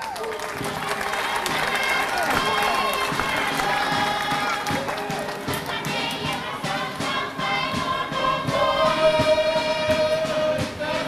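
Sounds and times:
crowd noise: 0.0 - 11.0
group of voices singing: 0.6 - 11.0.

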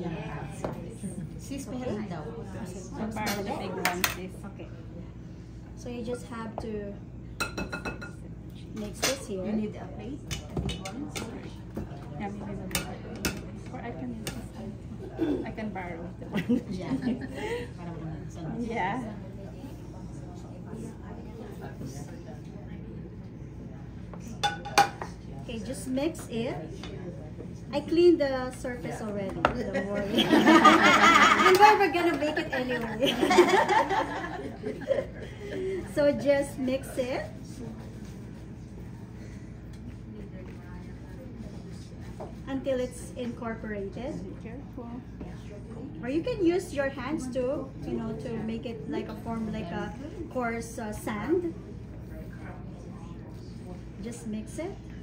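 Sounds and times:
murmur of voices: 0.0 - 55.0.

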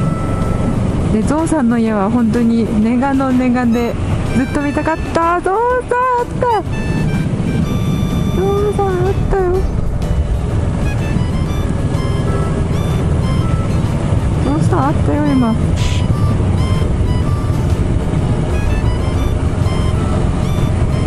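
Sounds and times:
motorcycle engine at speed: 0.0 - 4.5, 5.6 - 21.0
background music: 0.0 - 21.0.

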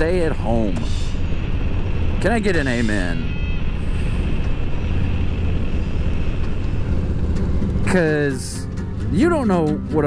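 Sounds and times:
motorcycle engine rumbling: 0.0 - 10.0
road and wind noise: 0.0 - 10.0.

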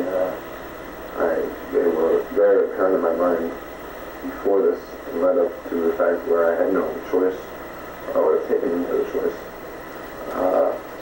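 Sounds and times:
man speaking on old tape: 0.0 - 11.0
tape hum and hiss: 0.0 - 11.0.

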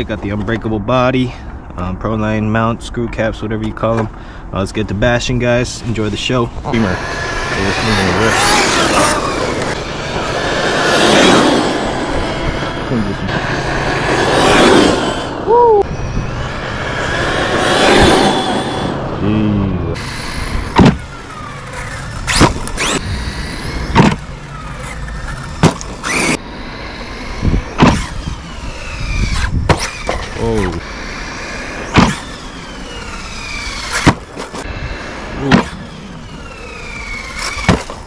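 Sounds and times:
electric motor whining and revving: 6.6 - 38.0.

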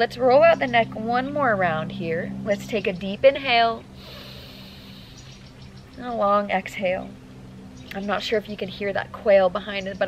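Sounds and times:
woman breathing in deeply: 4.0 - 5.3.

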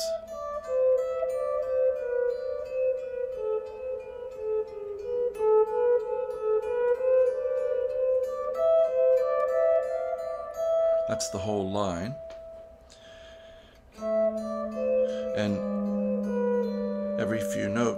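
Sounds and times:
clean electric guitar plucking: 0.0 - 12.9, 14.0 - 17.9.

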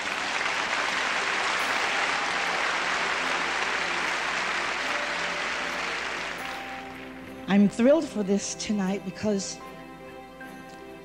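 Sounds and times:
large audience applauding: 0.0 - 7.5.

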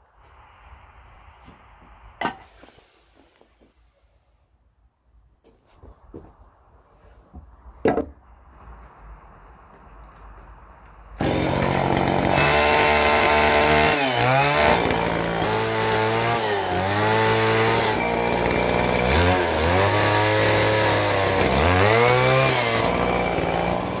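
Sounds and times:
chainsaw cutting wood: 11.2 - 24.0.

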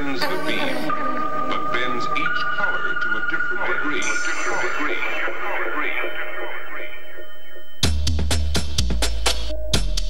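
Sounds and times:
electronic dance music breakdown: 0.0 - 9.5.

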